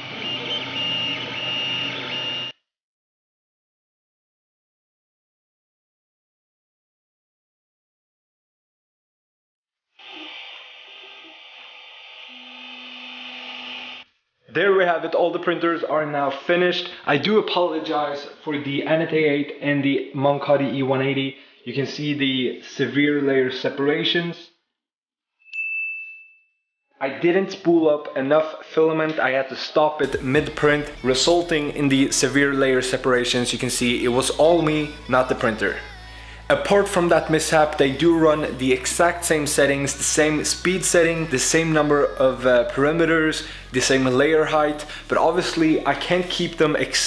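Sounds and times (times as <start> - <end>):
stepper motors whining: 10.0 - 14.0
high bell-like ding: 25.5 - 26.6.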